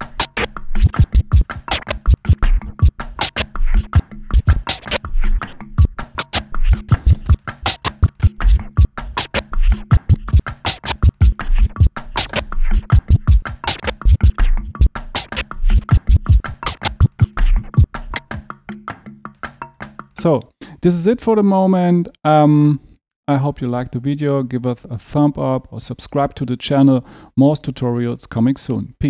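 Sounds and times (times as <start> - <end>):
turntable drum scratching: 0.0 - 18.5.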